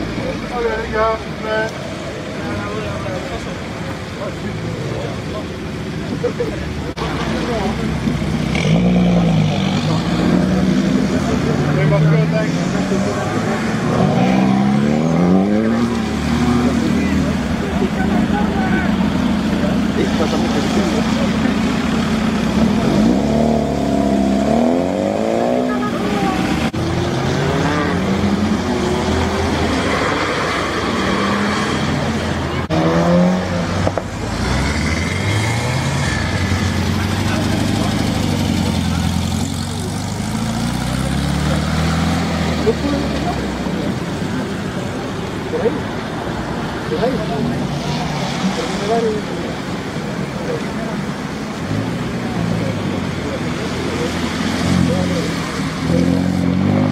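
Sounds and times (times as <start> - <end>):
cars accelerating and revving: 0.0 - 56.9.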